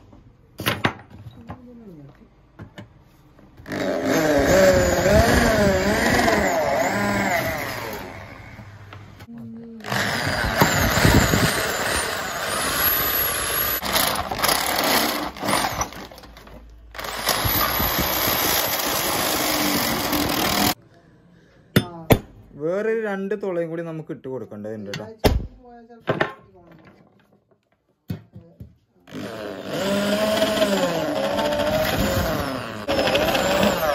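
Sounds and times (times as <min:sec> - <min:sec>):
electric drill drilling metal: 0:03.6 - 0:08.4, 0:09.8 - 0:16.0, 0:17.0 - 0:20.8, 0:29.1 - 0:33.9.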